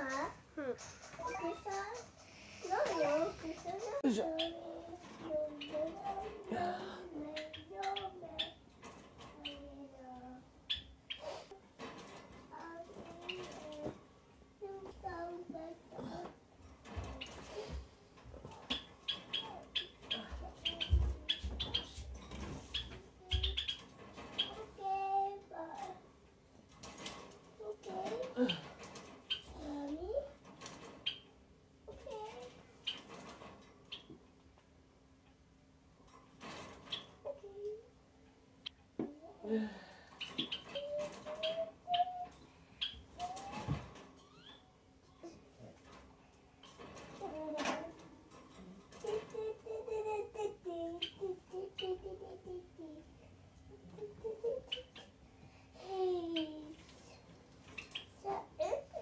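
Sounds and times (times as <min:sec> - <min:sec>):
knocks and rustling: 0:11.6 - 0:14.1, 0:14.7 - 0:26.0, 0:31.9 - 0:34.7, 0:36.0 - 0:37.4, 0:43.0 - 0:44.4, 0:45.6 - 0:50.9.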